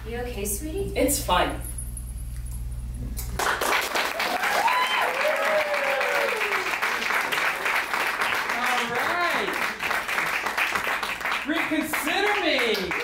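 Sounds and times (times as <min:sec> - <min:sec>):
low hum: 0:00.0 - 0:03.4
audience applauding: 0:03.4 - 0:13.0
person cheering: 0:04.2 - 0:07.0.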